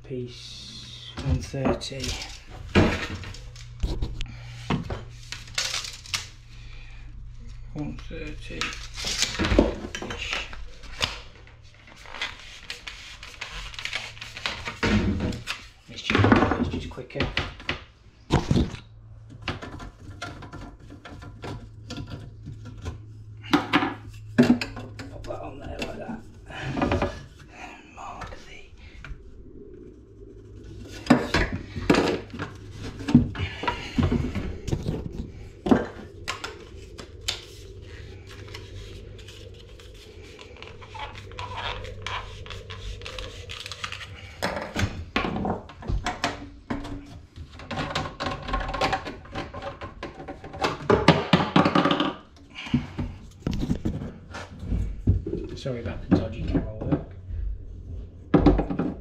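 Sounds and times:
steady low hum: 0:00.0 - 0:47.7
plastic pipe clicks and clatter: 0:13.4 - 0:25.2, 0:43.0 - 0:54.5.

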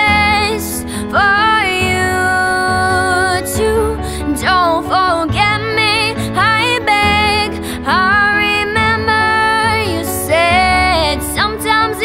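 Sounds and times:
girl singing: 0:00.0 - 0:12.0
breath: 0:00.9 - 0:01.1, 0:07.6 - 0:07.8.

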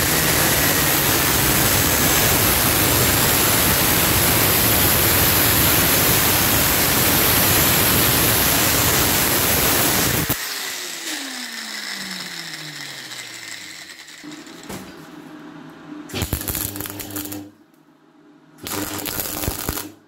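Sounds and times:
welder arc crackling: 0:00.0 - 0:14.8, 0:16.1 - 0:17.6, 0:18.6 - 0:20.0
angle grinder spinning down: 0:00.0 - 0:15.0
steady hum: 0:14.2 - 0:20.0.

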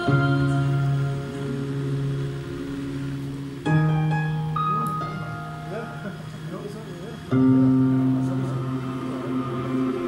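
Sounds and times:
metal band holding low chord: 0:00.0 - 0:10.0.

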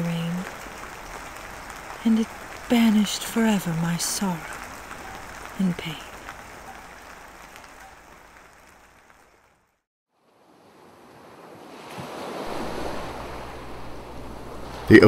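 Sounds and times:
ocean waves: 0:00.0 - 0:09.3, 0:10.1 - 0:15.0
rain: 0:00.0 - 0:15.0
low rumble of surf: 0:10.2 - 0:15.0.

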